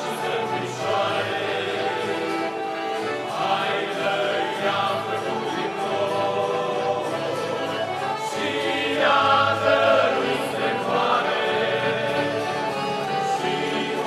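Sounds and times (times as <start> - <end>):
accordions: 0.0 - 14.0
acoustic guitar: 0.0 - 14.0
male vocal group singing: 0.0 - 14.0.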